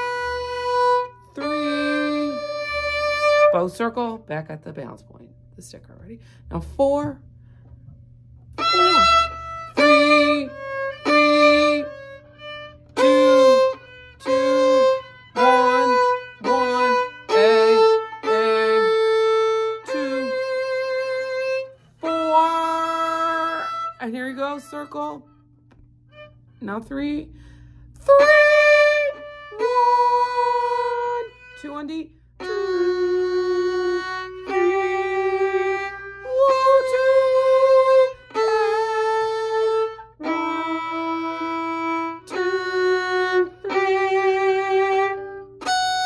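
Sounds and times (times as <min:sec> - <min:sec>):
violin bowed notes: 0:00.0 - 0:46.0.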